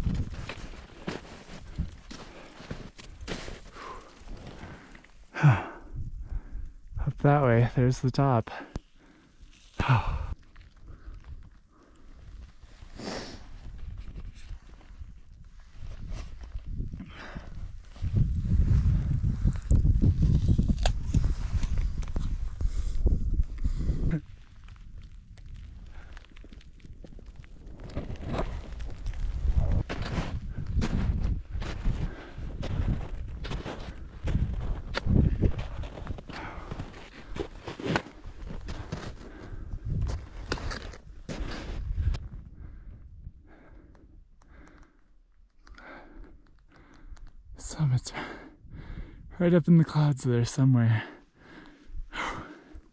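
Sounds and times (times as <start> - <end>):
footsteps in snow and on rock: 0.0 - 5.2, 12.3 - 42.5.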